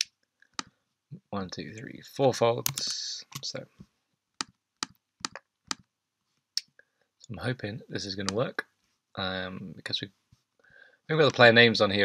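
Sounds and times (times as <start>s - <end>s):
computer mouse clicking: 2.6s - 3.5s.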